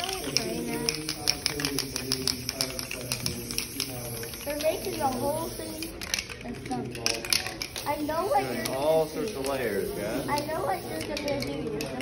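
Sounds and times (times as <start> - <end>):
spray paint can rattling: 0.0 - 12.0.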